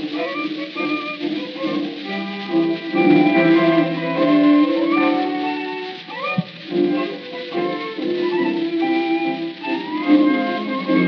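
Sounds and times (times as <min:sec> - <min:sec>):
bandoneon: 0:00.0 - 0:11.0
piano: 0:00.0 - 0:11.0
tango band playing: 0:00.0 - 0:11.0
violin: 0:00.0 - 0:11.0.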